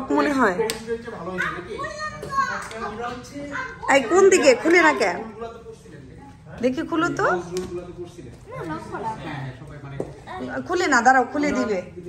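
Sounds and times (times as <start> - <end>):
child talking: 1.4 - 4.4.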